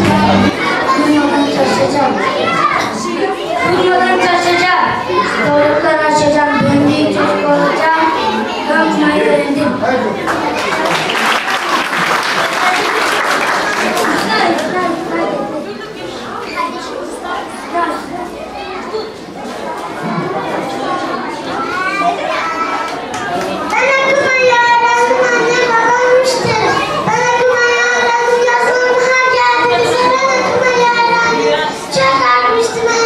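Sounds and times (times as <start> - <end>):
child speaking: 0.0 - 9.8, 20.0 - 22.9, 23.6 - 33.0
children chattering: 0.0 - 33.0.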